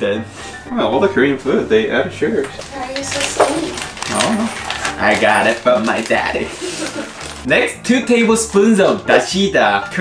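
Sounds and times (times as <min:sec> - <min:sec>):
plastic packet crinkling: 0:02.5 - 0:07.7, 0:08.5 - 0:10.0.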